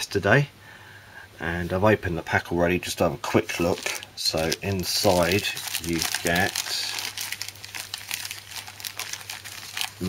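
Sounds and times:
plastic wrapping crinkling: 3.2s - 10.0s.

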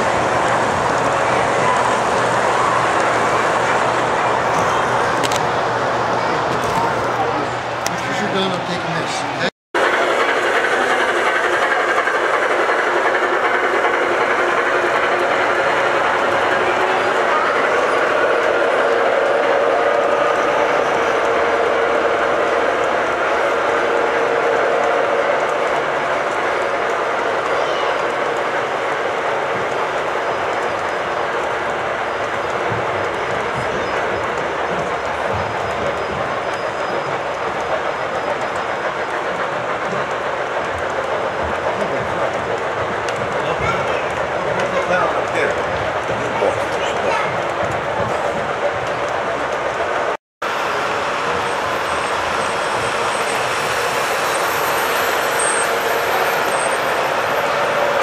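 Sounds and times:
model train wheels rumbling: 0.0s - 58.0s.

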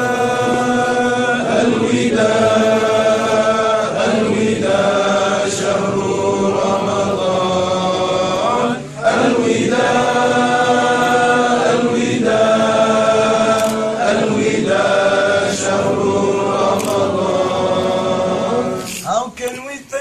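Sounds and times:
men chanting together: 0.0s - 18.9s.

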